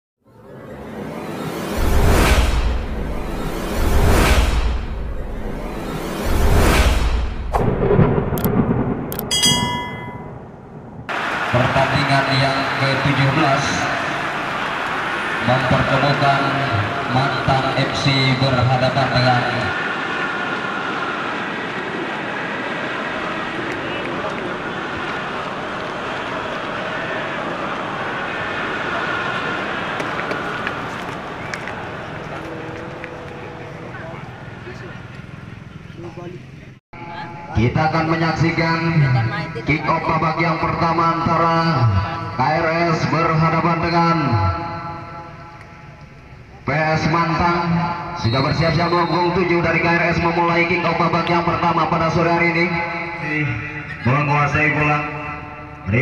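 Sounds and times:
low rumbling boom: 2.0 - 11.1
bright ringing chime: 9.3 - 10.6
murmur of crowd: 19.6 - 37.5.

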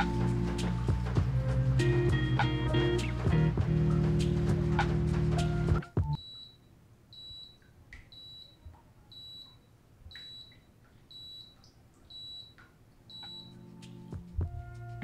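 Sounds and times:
music: 0.0 - 6.2, 13.2 - 15.0
dishwasher high-pitched beeps: 6.1 - 13.6.

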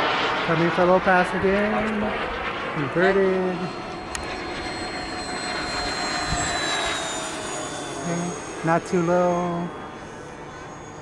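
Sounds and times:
model jet ducted fans whining: 0.0 - 11.0.

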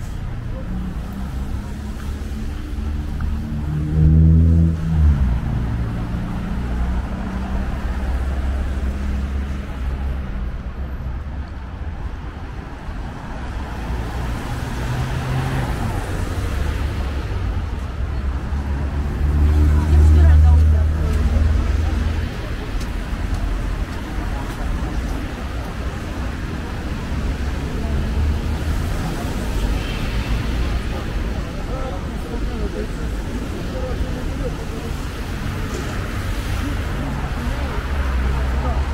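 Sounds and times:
heavy vehicle engine hum: 0.0 - 11.2
cars passing: 0.0 - 38.9.

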